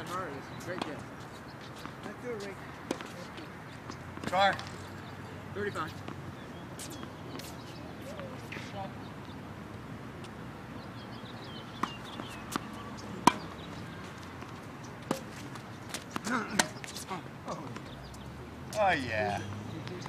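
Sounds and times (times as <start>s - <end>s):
tennis balls struck by racquets: 0.0s - 9.3s, 11.4s - 20.0s.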